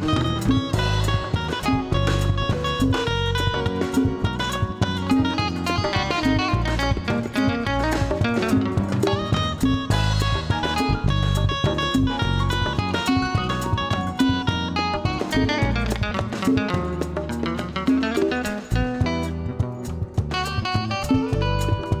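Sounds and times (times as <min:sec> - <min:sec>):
drum kit: 0:00.0 - 0:22.0
electric bass: 0:00.0 - 0:22.0
electro-acoustic guitar lead: 0:00.0 - 0:22.0
hand drums: 0:00.0 - 0:22.0.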